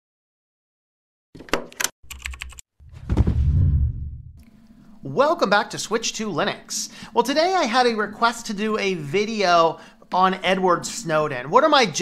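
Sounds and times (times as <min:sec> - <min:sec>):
keyboard typing clicks: 0:01.5 - 0:02.6
deep boom: 0:02.9 - 0:04.4.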